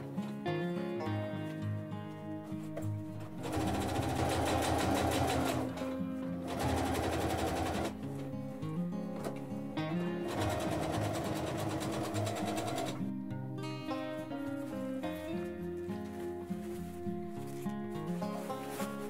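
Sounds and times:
sewing machine stitching: 3.4 - 5.8, 6.4 - 7.9, 10.2 - 13.0.

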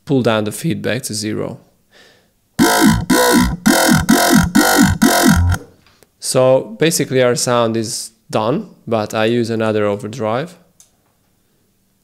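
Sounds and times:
gritty growl bass synth: 2.6 - 5.7.

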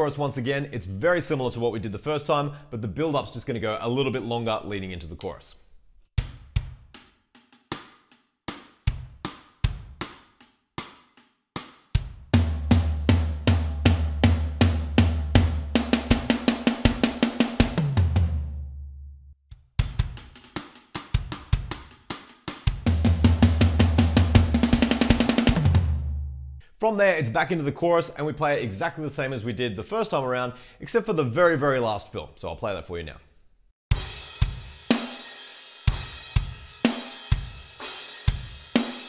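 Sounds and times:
electronic drum kit playing: 12.0 - 18.7, 19.8 - 26.6, 33.9 - 39.0.

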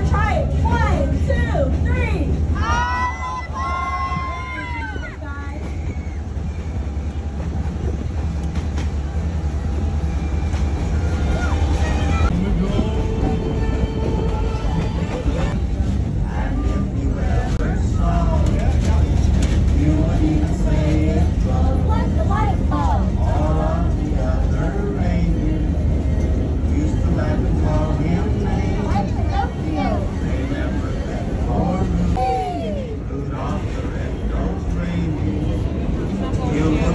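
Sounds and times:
train rumbling: 0.0 - 36.9
voices: 0.0 - 36.9.

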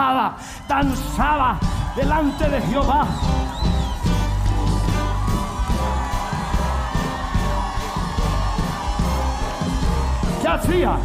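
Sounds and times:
upbeat worship band music: 0.4 - 11.0.

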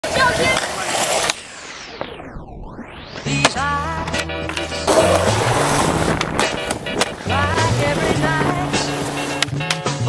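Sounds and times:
skateboard wheels rolling on concrete: 0.0 - 2.2, 3.2 - 10.0.

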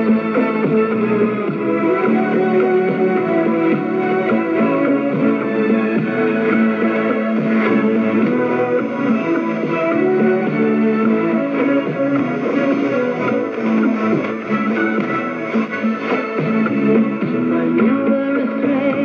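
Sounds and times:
guitar music from radio speaker: 0.0 - 19.0.

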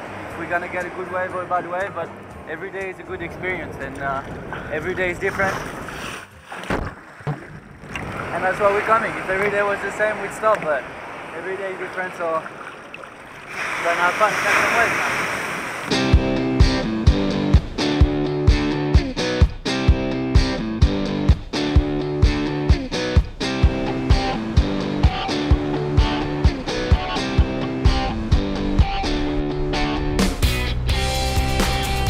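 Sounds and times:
guitar music with steady beat: 15.9 - 32.0.

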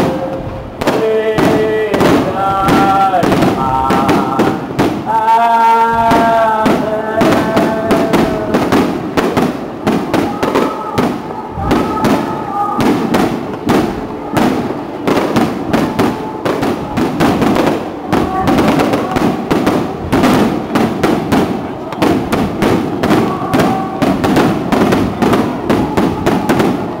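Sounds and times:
crowd voices: 0.0 - 27.0
fireworks bursting: 0.0 - 27.0.

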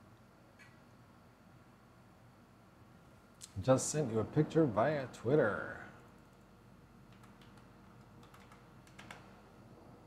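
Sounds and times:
computer keyboard clicks: 7.1 - 9.3.

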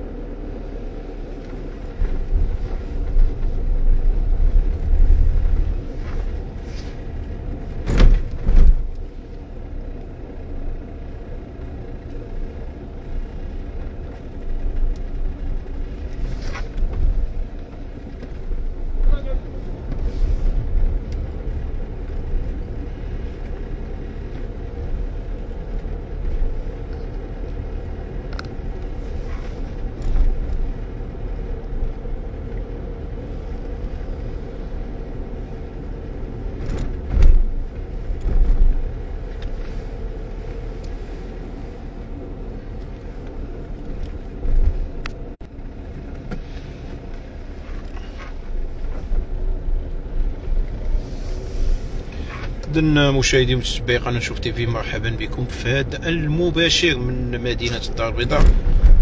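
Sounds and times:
car engine and tyre rumble: 0.0 - 59.0
car bumps: 7.8 - 8.9, 58.2 - 59.0.

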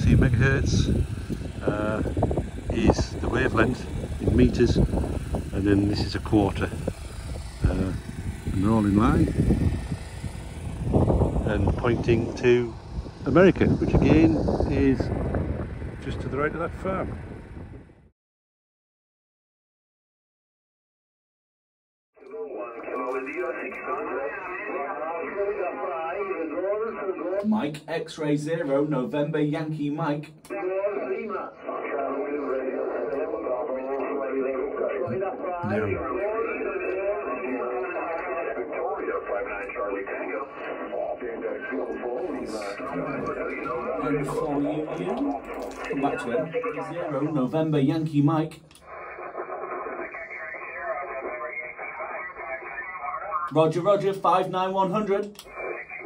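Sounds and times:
person talking over radio speaker: 0.0 - 10.1, 11.2 - 15.1, 22.2 - 56.0.

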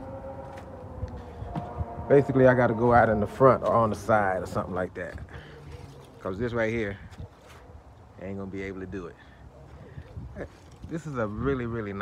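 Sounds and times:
low rumble: 0.0 - 5.4.

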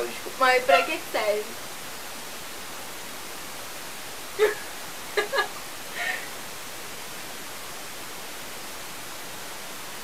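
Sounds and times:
microphone and room hiss: 0.0 - 10.0.

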